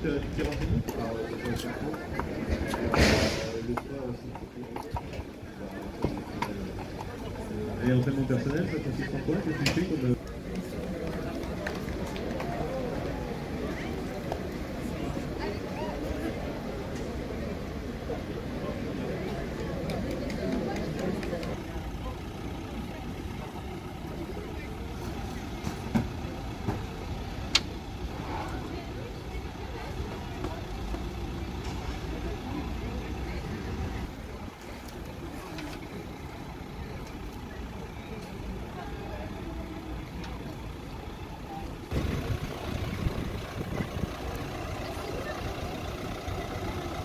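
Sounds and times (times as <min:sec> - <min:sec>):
indistinct voices: 0:00.0 - 0:47.0
vehicle engines idling: 0:00.0 - 0:47.0.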